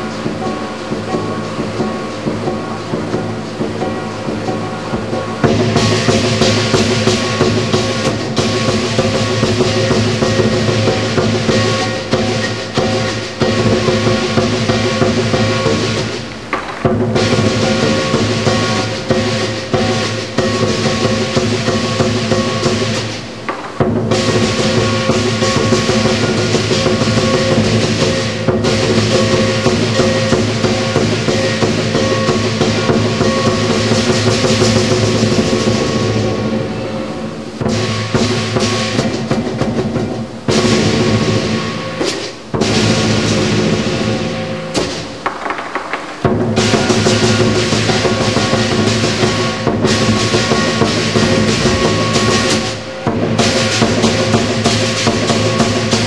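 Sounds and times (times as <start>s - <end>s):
gong ringing: 0.0s - 45.4s, 46.0s - 56.0s
cymbals clashing: 0.0s - 56.0s
large drum beaten rapidly: 0.0s - 56.0s.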